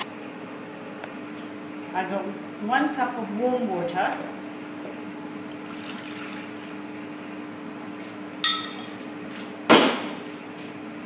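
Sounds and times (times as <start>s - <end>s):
steady low hum: 0.0s - 11.0s
water pouring into plastic bowl: 5.6s - 6.5s
ringing clink: 8.4s - 9.0s
loud knock: 9.7s - 10.2s.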